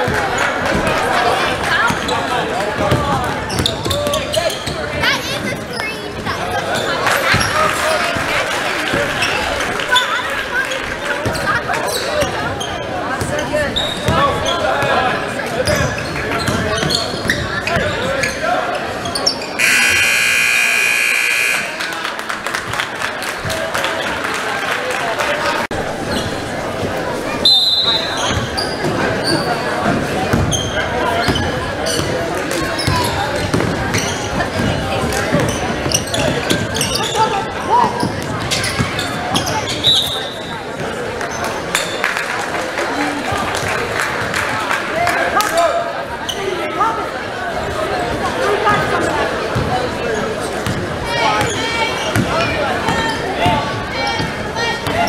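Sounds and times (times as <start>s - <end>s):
crowd voices: 0.0s - 55.0s
scoreboard buzzer: 19.6s - 21.9s.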